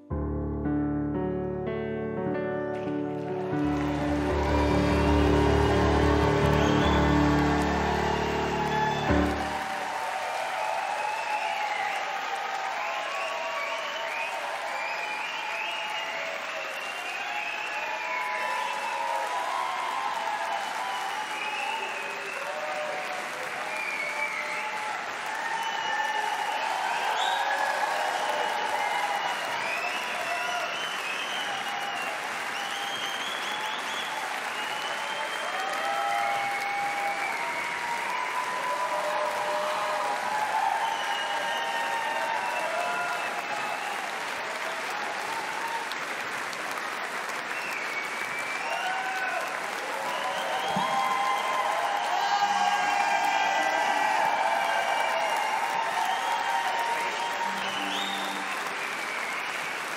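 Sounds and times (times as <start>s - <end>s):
audience applauding: 2.6s - 59.9s.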